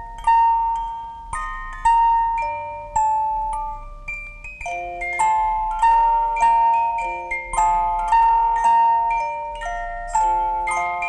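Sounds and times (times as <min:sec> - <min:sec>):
glockenspiel-like tune: 0:00.0 - 0:11.0.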